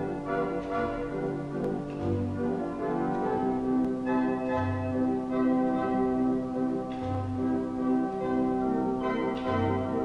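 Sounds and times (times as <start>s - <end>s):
church bells ringing: 2.3s - 10.0s.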